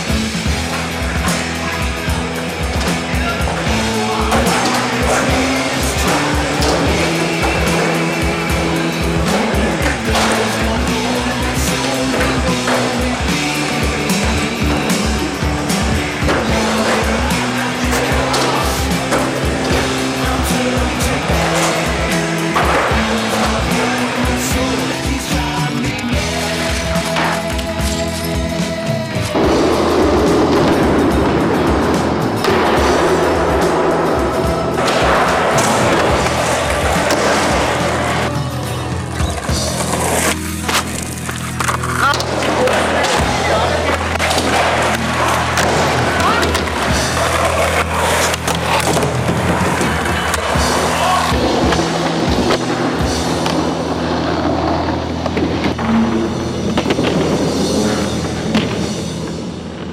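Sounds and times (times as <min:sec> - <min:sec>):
rock music: 0:00.0 - 0:59.9
skateboard wheels rolling: 0:00.0 - 0:59.9
skateboards clacking and landing: 0:00.0 - 0:59.9.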